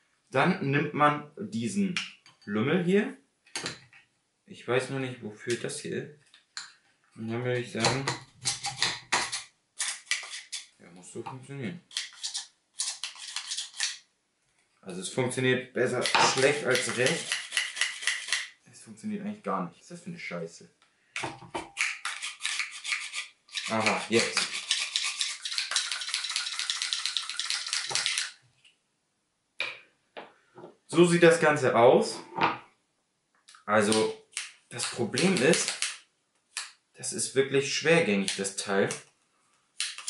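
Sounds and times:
garlic grater scraping: 16.3 - 18.4.

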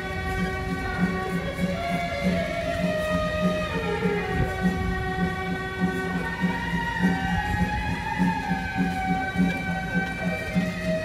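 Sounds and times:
steady drum beat: 0.0 - 11.0.

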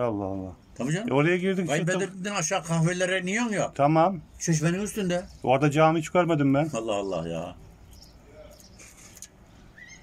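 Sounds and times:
faint rising bird call: 9.6 - 10.0.

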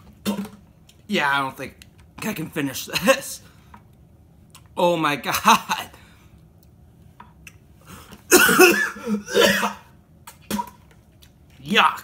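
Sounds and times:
man coughing into a bucket: 8.3 - 9.9.

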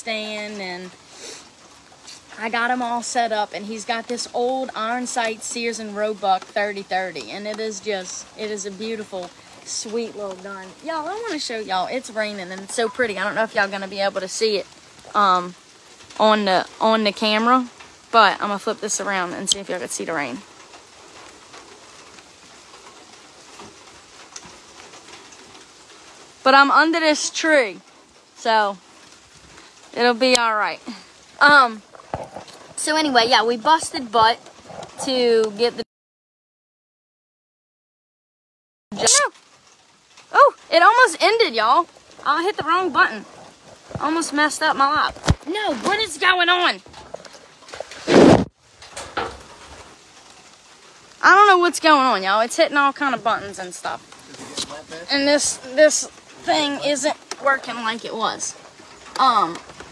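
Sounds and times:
faint steady hiss: 0.0 - 35.8, 38.9 - 59.9
steady rain falling: 0.0 - 35.8, 38.9 - 59.9.

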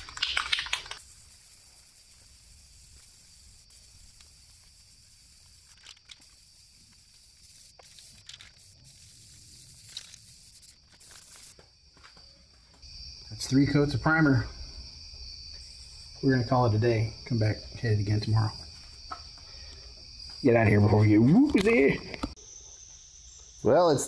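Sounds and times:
aerosol can spraying: 0.0 - 11.7
crickets chirring: 0.0 - 24.0.

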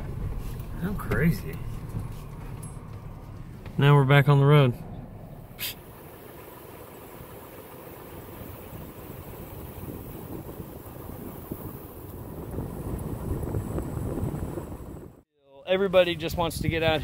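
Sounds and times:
car engine and road noise: 0.0 - 15.3.

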